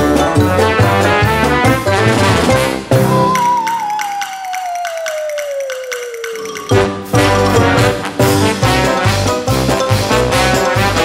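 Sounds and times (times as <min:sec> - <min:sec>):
whistle-like tone sliding down: 0:03.0 - 0:06.7
clap-like percussion ticks: 0:03.2 - 0:07.0.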